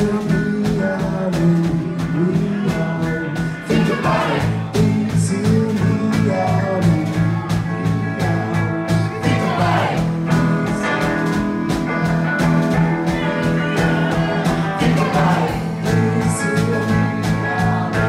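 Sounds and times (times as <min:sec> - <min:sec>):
bass notes: 0:00.0 - 0:18.0
electric guitar: 0:00.0 - 0:18.0
steady drum beat: 0:00.0 - 0:18.0.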